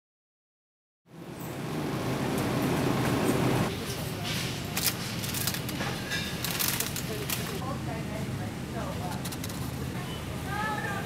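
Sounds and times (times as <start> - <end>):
shopping cart rolling and rattling: 3.2 - 7.7.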